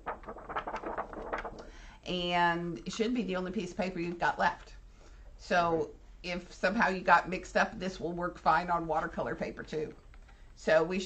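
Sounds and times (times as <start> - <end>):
drawing paper rustling: 0.0 - 1.7.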